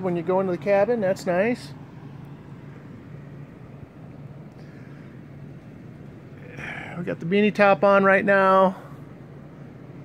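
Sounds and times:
generator humming: 0:00.0 - 0:10.0
outdoor background noise: 0:00.0 - 0:10.0.

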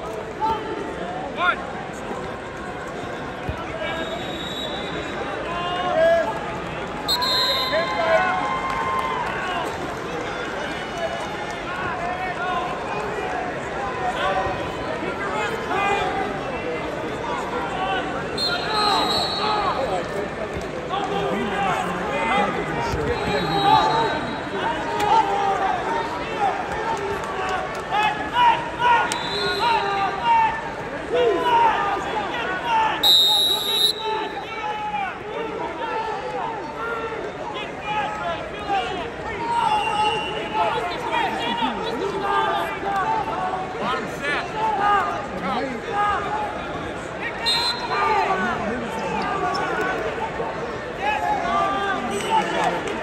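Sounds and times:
crowd shouting: 0:20.9 - 0:45.1.

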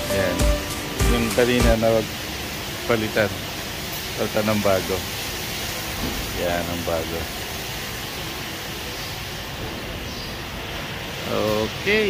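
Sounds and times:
milking machinery rumble and hiss: 0:00.0 - 0:12.0.

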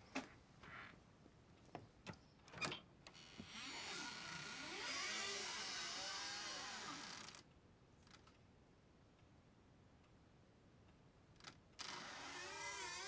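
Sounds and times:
door hinges creaking: 0:02.5 - 0:07.4, 0:11.8 - 0:13.0.

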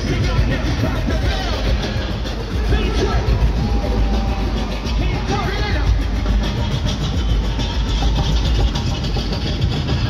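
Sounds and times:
hip-hop music over loudspeakers: 0:00.0 - 0:10.0.

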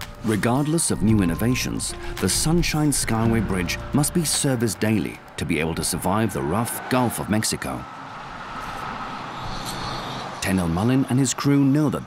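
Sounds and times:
road traffic passing: 0:00.0 - 0:12.0.

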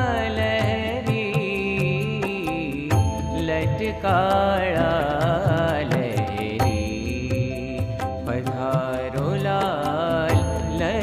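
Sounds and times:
devotional singing: 0:00.0 - 0:11.0
sharp percussion ticks: 0:00.0 - 0:11.0.

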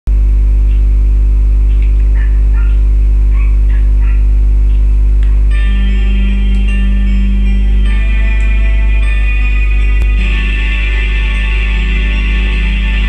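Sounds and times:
electrical mains hum: 0:00.1 - 0:13.0
music backing track: 0:01.6 - 0:13.0.

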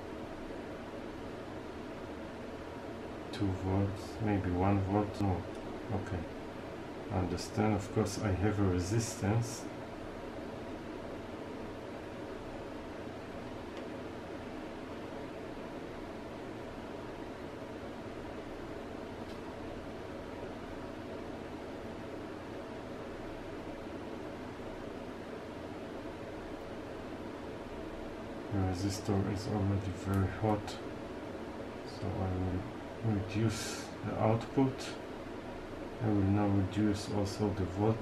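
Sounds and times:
background hiss: 0:00.0 - 0:38.0.

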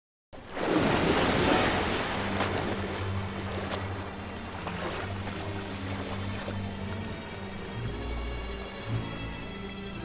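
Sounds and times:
ocean surf rushing: 0:00.5 - 0:04.8.

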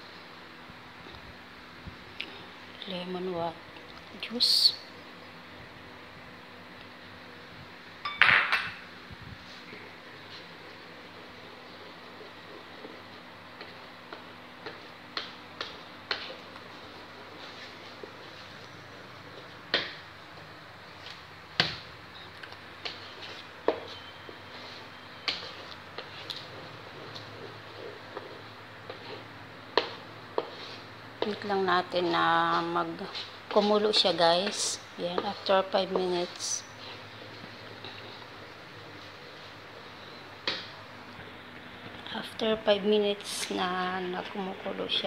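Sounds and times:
wooden spatula scraping metal wok: 0:22.8 - 0:40.2.

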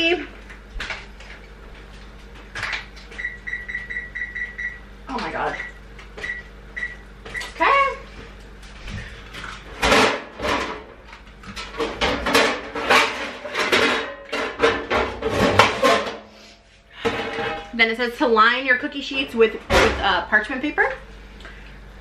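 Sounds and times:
metal baking pans clattering: 0:11.6 - 0:16.2, 0:17.0 - 0:17.8.

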